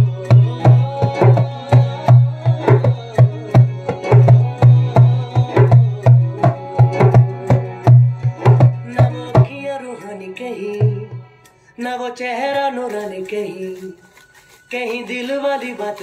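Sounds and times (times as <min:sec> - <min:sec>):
djembe drumming: 0:00.0 - 0:09.6, 0:10.8 - 0:11.2.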